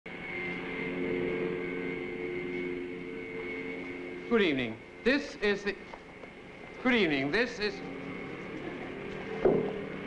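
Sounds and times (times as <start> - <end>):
engine droning with high whine: 0.1 - 10.0.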